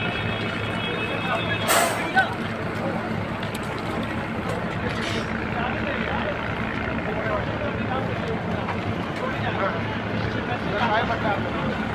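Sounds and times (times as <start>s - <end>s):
onlookers' voices: 0.0s - 11.9s
train engine running: 0.0s - 11.9s.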